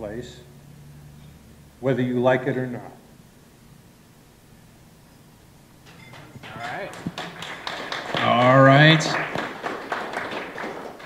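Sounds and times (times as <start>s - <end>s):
audience applauding: 5.9s - 11.0s.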